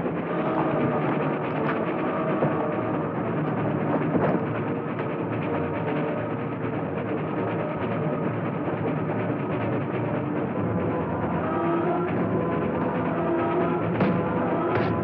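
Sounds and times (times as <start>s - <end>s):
dramatic orchestral music: 0.0s - 15.0s
timpani: 0.0s - 15.0s.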